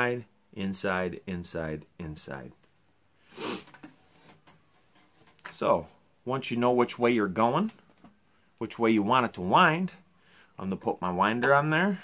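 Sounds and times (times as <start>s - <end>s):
breathy exhale: 3.2s - 3.7s.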